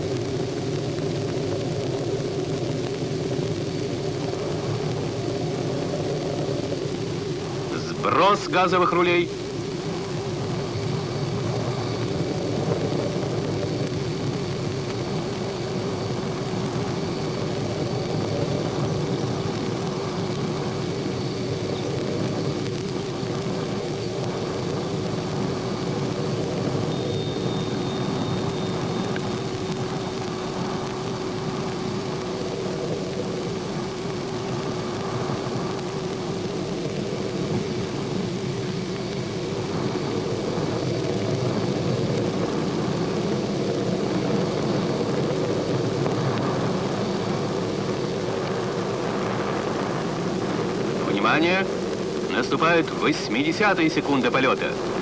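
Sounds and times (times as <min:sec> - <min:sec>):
faint wavering hum: 0:00.0 - 0:55.0
rocket rumbling drone: 0:00.0 - 0:55.0.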